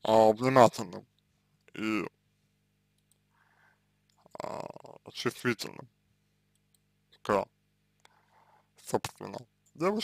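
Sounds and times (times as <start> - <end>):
man speaking: 0.0 - 1.1, 1.7 - 2.2, 4.2 - 5.9, 7.2 - 7.5, 8.8 - 10.0.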